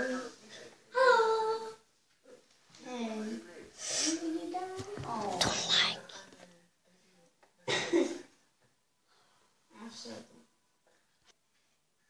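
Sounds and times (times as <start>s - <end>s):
breathy hiss: 3.8s - 4.4s.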